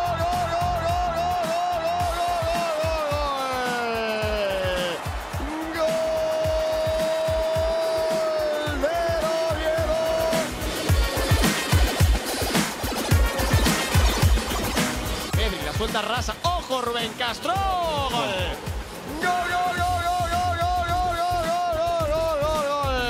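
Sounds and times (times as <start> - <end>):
commentator shouting: 0.0 - 10.8, 15.3 - 23.0
electronic music with beat: 0.0 - 23.0.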